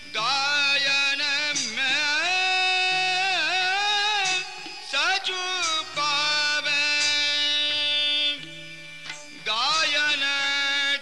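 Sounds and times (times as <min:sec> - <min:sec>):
man singing long note: 0:00.0 - 0:11.0
steady drone: 0:00.2 - 0:10.7
hand cymbal strike: 0:01.5 - 0:10.2.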